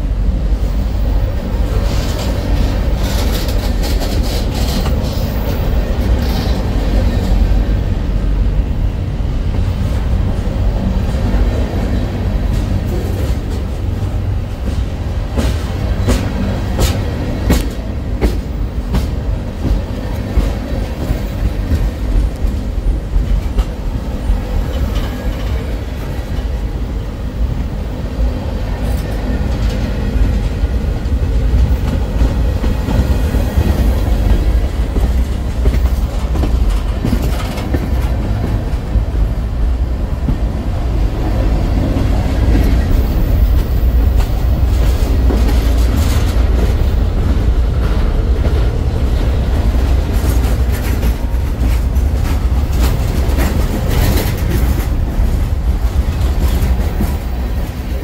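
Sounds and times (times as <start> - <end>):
freight train wheels clacking: 0.6 - 58.0.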